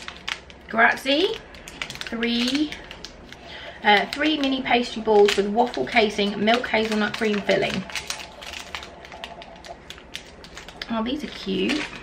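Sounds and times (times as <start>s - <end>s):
sweet wrapper crackling: 0.0s - 12.0s.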